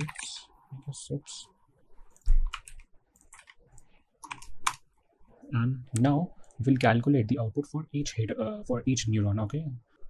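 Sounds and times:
computer keyboard typing: 0.0 - 0.4, 2.1 - 4.9.

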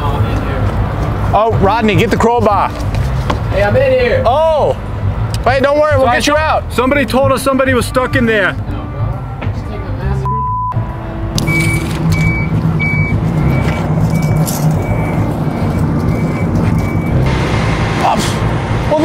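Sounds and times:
high reversing beep alarm: 10.2 - 10.8, 11.4 - 17.3
machinery engine running low: 10.8 - 19.0.

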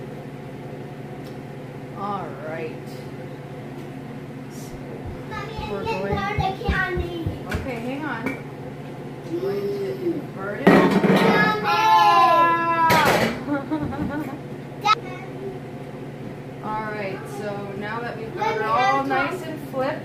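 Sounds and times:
steady low hum: 0.0 - 11.2
kitchen knocks and clatter: 5.0 - 8.5, 10.6 - 11.5, 12.9 - 14.2
children's voices: 5.2 - 7.6, 11.2 - 13.0.

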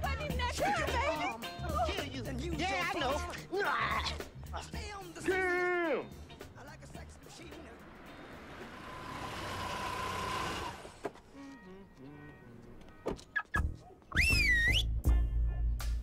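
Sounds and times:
car driving past: 7.0 - 11.1.

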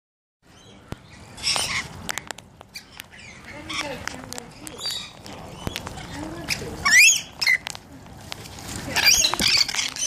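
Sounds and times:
lorikeets squawking and chattering: 0.5 - 7.8, 8.9 - 10.0
birds splashing in water: 0.7 - 10.0.

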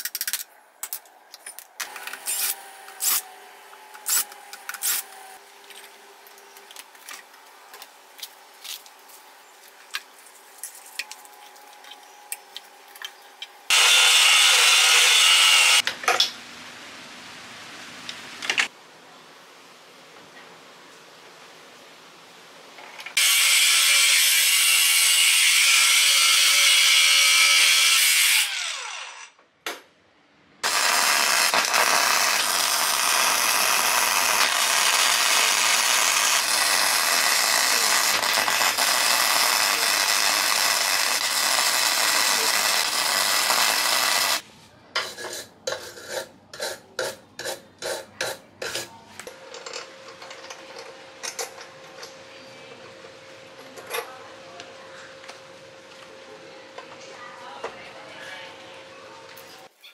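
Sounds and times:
power tool spinning down: 13.7 - 15.8, 23.2 - 29.3, 30.6 - 44.4
arc welding hiss: 30.6 - 44.4.

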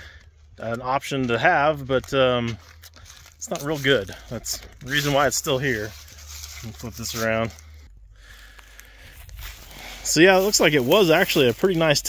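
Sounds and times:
low steady rumble: 0.0 - 12.0
footsteps through dry grass: 2.6 - 12.0.

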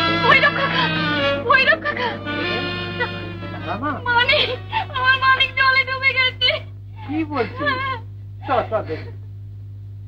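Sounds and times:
woman's wavering high voice: 0.0 - 3.4
steady low hum: 0.0 - 10.0.

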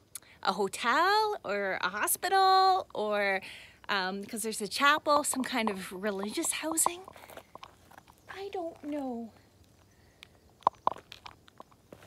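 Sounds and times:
footsteps crunching on gravel: 5.2 - 12.0
faint ticks: 9.6 - 12.0.

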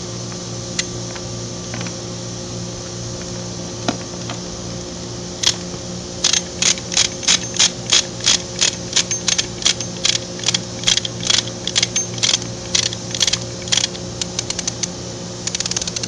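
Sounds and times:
steady low hum: 0.0 - 16.0
chain hoist ratchet clicking: 5.4 - 16.0.

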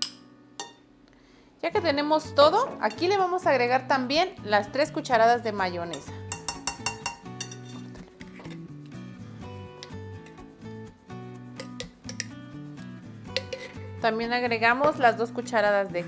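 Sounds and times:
spoon clinking against glass: 0.0 - 0.8, 5.9 - 8.7, 11.6 - 12.4, 13.3 - 13.8
light background music: 1.6 - 16.0.

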